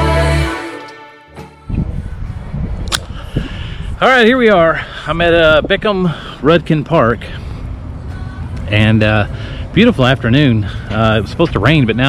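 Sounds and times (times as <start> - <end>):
microphone handling noise: 1.7 - 4.0
wind buffeting microphone: 1.7 - 6.4
sharp click: 2.8 - 3.2.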